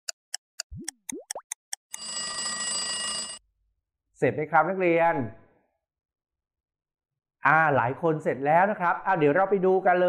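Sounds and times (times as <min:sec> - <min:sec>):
clock ticking: 0:00.0 - 0:02.1.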